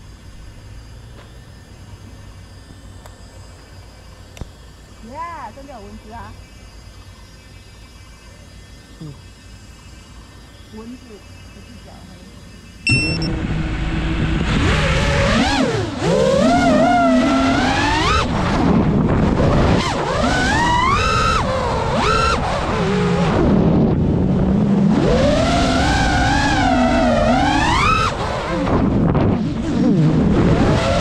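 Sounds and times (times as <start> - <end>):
quadcopter motors whining: 0.1 - 31.0.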